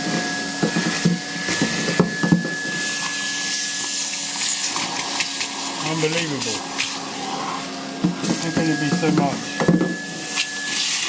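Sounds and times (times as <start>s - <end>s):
vacuum cleaner running: 0.0s - 11.0s.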